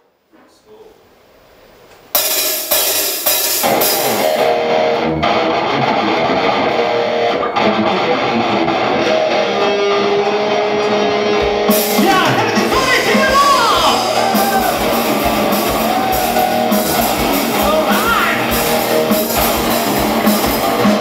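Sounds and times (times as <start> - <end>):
loud band hits: 2.2 - 4.9, 10.7 - 21.0
rock band playing live: 2.2 - 21.0.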